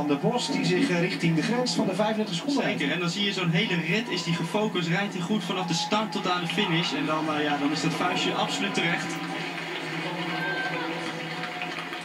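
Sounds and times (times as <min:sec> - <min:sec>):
television sports broadcast: 0:00.0 - 0:12.0.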